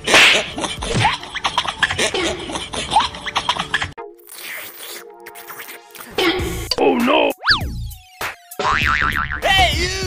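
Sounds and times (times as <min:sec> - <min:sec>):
music: 0:00.3 - 0:10.0.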